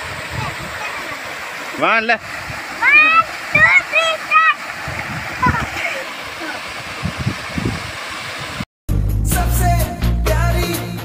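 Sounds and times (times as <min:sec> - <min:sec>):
waterfall pouring into pool: 0:00.0 - 0:08.6
high-pitched shouts: 0:02.8 - 0:04.6.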